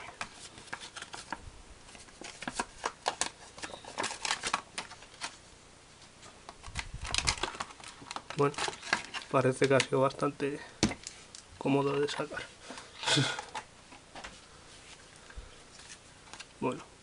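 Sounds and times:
plastic packaging crackling: 0:00.0 - 0:05.4, 0:06.6 - 0:10.4.

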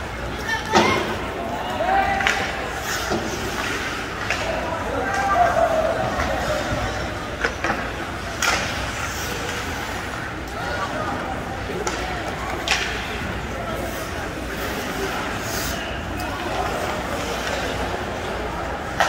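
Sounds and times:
hockey sticks clacking on puck: 0:02.0 - 0:19.0.

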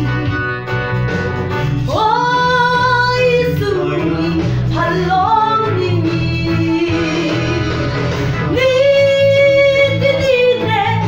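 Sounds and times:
backing track with bass line: 0:00.0 - 0:11.0.

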